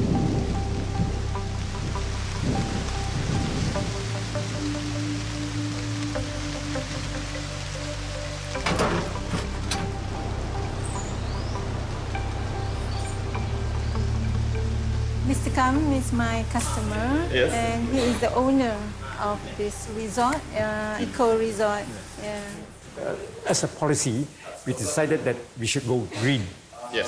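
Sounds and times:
slow background music: 0:00.0 - 0:23.6
steady rainfall: 0:00.0 - 0:27.0.

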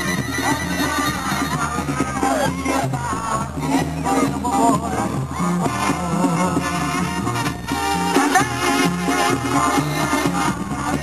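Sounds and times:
brass band music: 0:00.0 - 0:11.0.

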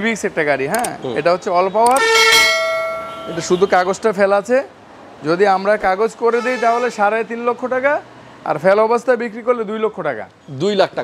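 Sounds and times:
bell ding: 0:02.0 - 0:03.7.

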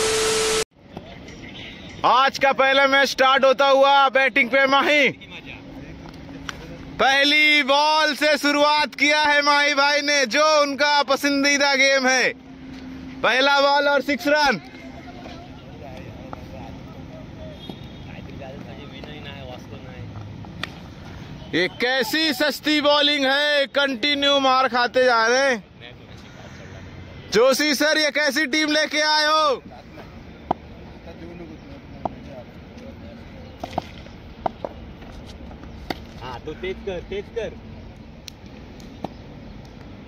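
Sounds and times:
open-air background noise: 0:00.0 - 0:40.0.

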